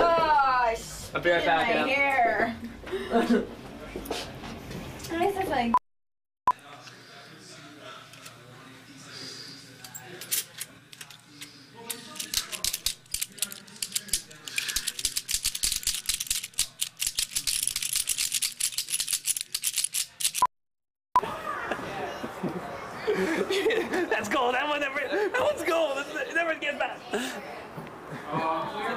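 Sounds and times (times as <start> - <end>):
plastic toy figures clattering: 11.9 - 20.4.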